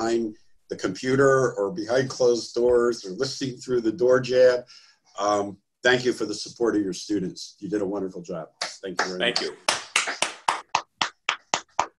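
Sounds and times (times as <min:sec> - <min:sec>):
hands clapping: 0:08.6 - 0:12.0.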